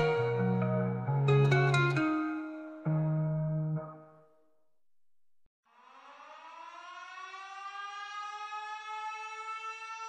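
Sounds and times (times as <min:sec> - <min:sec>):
siren winding up: 0:05.7 - 0:10.0.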